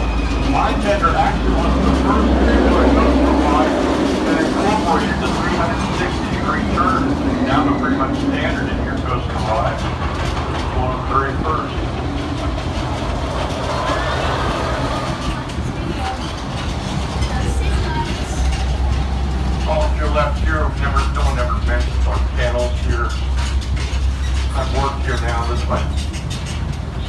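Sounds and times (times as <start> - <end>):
indistinct talking: 0.0 - 26.1
tram engine rumble: 0.0 - 27.0.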